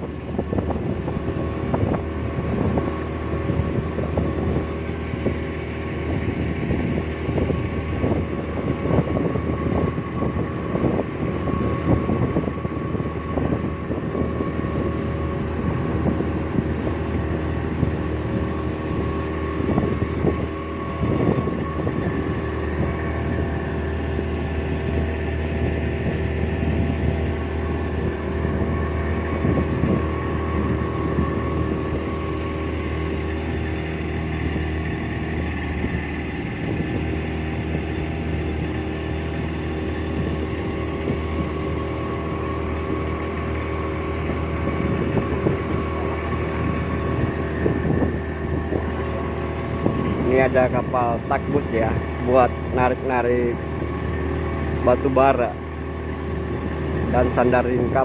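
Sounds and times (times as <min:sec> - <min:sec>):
wind noise: 0:00.0 - 0:55.1
speedboat engine full throttle: 0:00.0 - 0:58.0.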